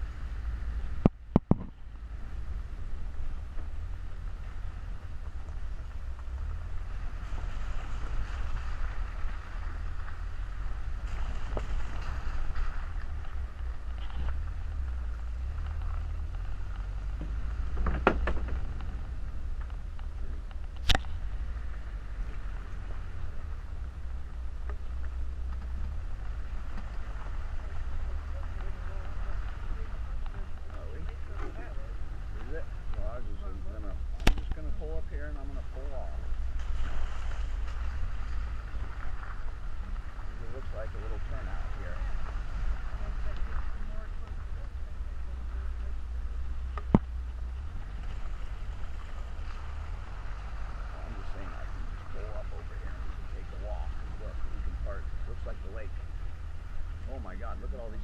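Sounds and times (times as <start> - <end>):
wind and road noise rumble: 0.0 - 58.0.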